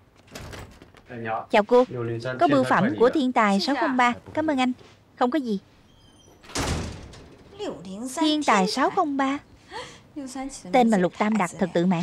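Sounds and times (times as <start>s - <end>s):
front door thumping shut: 0.2s - 1.1s, 6.3s - 7.6s.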